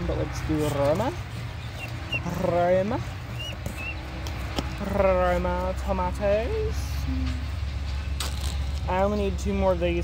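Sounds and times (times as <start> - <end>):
small bird chirps: 3.3 - 4.1.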